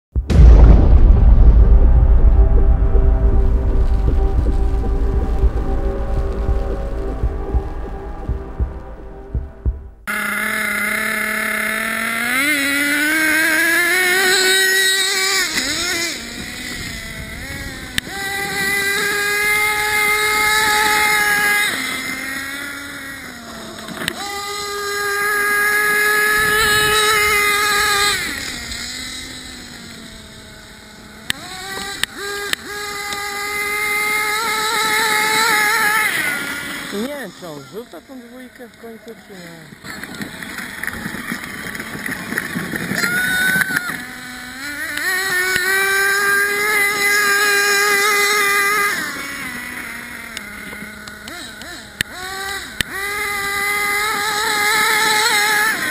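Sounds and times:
intro music: 0.2 - 10.1
nitro engine high-pitched whine: 0.2 - 55.9.

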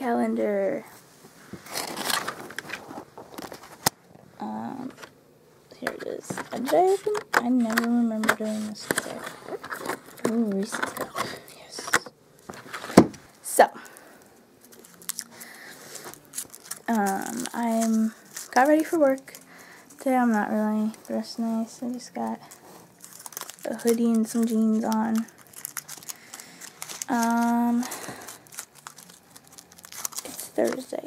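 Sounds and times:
paper crinkling: 1.5 - 3.9, 5.8 - 31.0.

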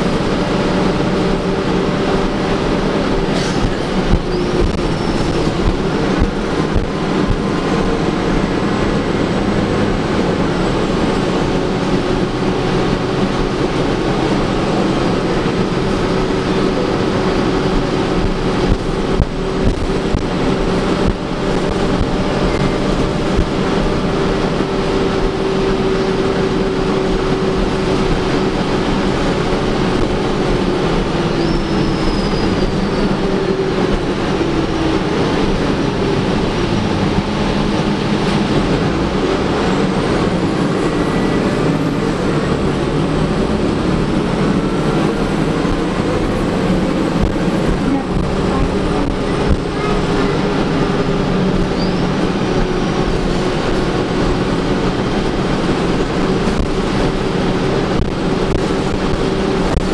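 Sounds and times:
bus drivetrain drone: 0.0 - 59.9
road noise: 0.0 - 59.9.

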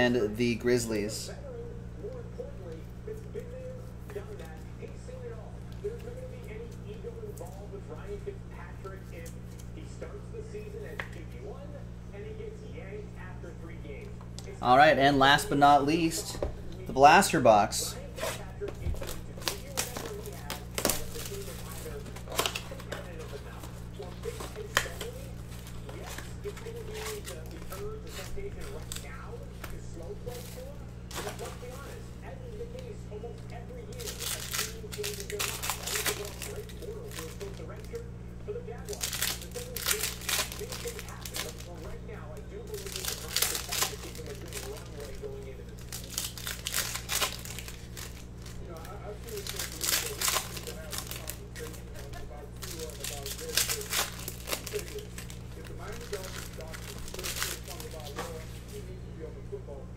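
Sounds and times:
steady low hum: 0.0 - 59.9
foil packs crinkling and tearing: 16.9 - 38.0, 38.6 - 58.9.

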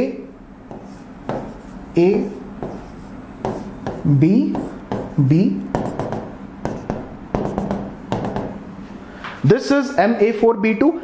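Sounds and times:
marker tapping on whiteboard: 0.7 - 1.8, 2.6 - 8.6.

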